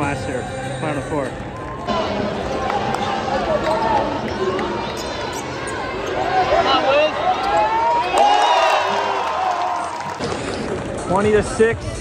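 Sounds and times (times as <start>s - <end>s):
crowd chatter in arena: 0.0s - 12.0s
sneakers squeaking: 1.9s - 7.9s.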